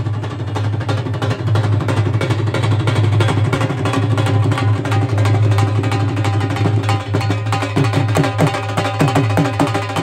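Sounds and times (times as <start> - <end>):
barrel drums beaten in fast rhythm: 0.0 - 10.0.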